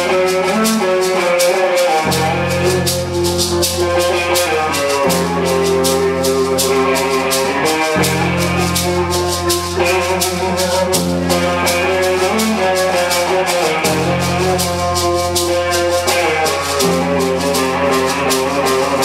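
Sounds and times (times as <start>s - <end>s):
fast percussion tick: 0.0s - 19.0s.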